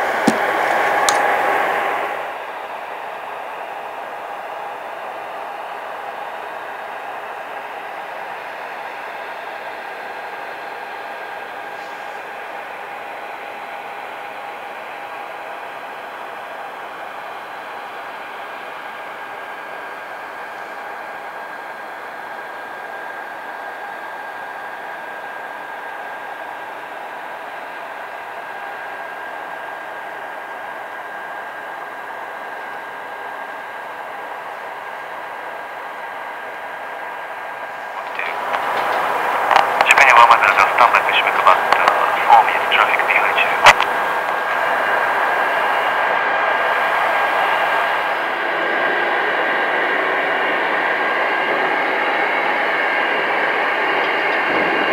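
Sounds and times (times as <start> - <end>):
jet turbine whine: 0.0 - 13.7, 14.4 - 54.9.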